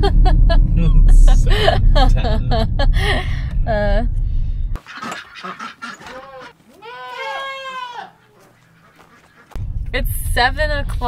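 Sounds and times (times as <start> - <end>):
goats bleating: 5.6 - 9.4.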